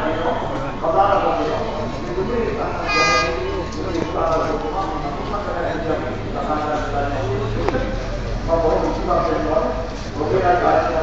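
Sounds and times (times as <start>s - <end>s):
people talking: 0.0s - 11.0s
train horn blast: 2.8s - 3.5s.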